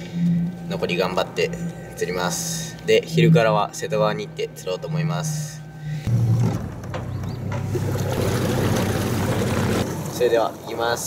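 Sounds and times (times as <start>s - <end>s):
outboard motor running: 6.1s - 10.1s
water rushing: 7.7s - 10.2s.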